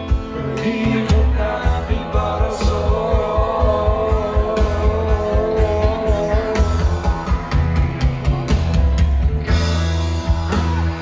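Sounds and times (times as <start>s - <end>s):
drums keeping a beat: 0.0s - 11.0s
live rock band playing: 0.0s - 11.0s.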